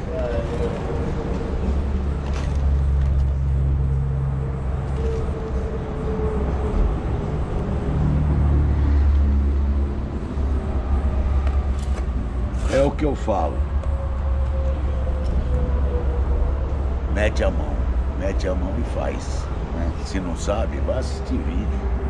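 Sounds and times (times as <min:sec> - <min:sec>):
engine rumble: 0:00.0 - 0:22.0.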